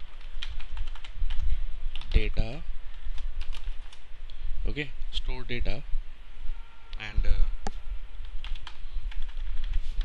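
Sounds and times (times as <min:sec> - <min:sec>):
computer keyboard typing: 0:00.0 - 0:04.1, 0:08.2 - 0:10.0.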